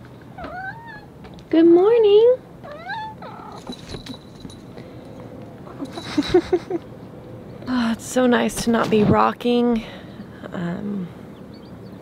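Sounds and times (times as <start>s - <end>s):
cat meowing: 0.4s - 1.1s, 2.6s - 3.7s.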